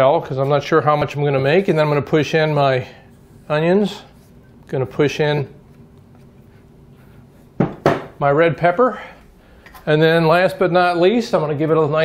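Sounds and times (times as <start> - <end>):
cutting board knocking on bowl: 7.6 - 8.1.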